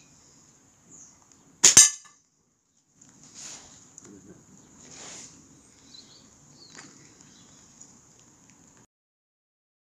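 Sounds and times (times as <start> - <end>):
faint bird chirps: 5.6 - 7.8.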